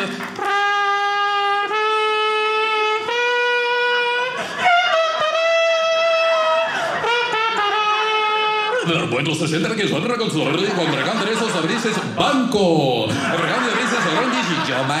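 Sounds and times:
man imitating wind instrument: 0.0 - 9.4.

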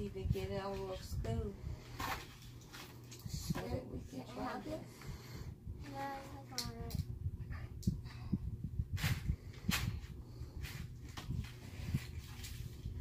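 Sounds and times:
low steady hum: 0.0 - 13.0.

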